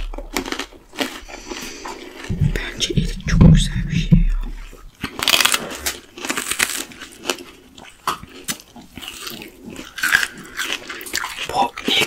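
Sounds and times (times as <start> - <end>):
crisp crunching of plums: 0.0 - 12.0.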